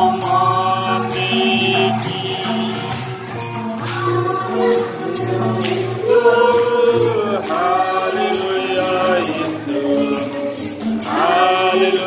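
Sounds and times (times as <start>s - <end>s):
women singing worship song: 0.0s - 3.0s, 3.8s - 12.0s
acoustic guitar: 0.0s - 12.0s
hand drum: 0.0s - 12.0s
tambourine beat: 0.0s - 12.0s.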